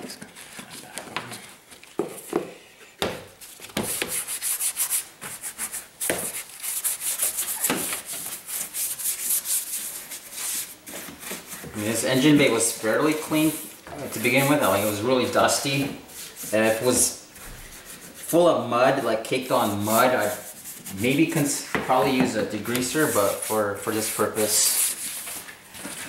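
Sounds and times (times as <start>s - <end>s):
brush scrubbing wet panels: 3.5s - 26.0s.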